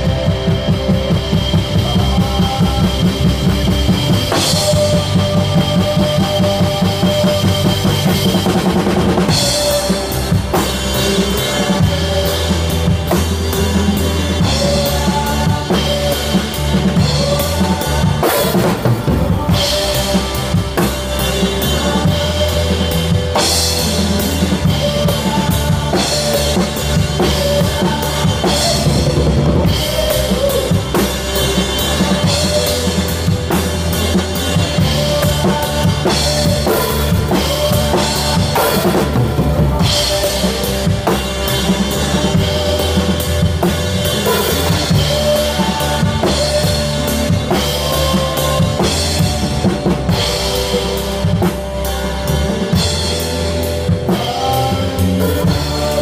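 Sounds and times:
loud drum kit: 0.0s - 56.0s
rock band playing: 0.0s - 56.0s.

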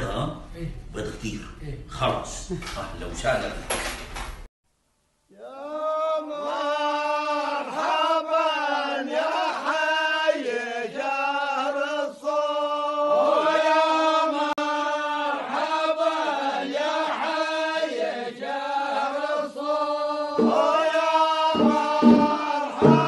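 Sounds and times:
low musical accompaniment: 20.4s - 20.9s, 21.5s - 23.0s.

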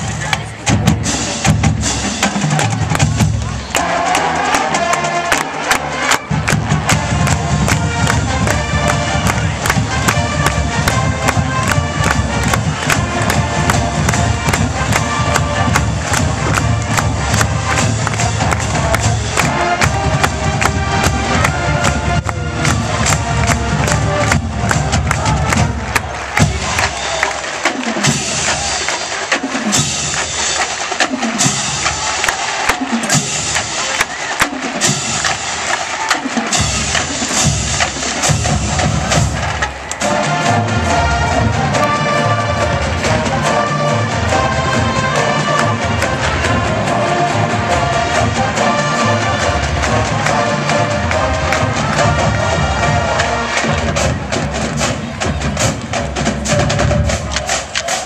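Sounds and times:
drumline: 0.0s - 58.0s
marching band playing: 0.0s - 58.0s.

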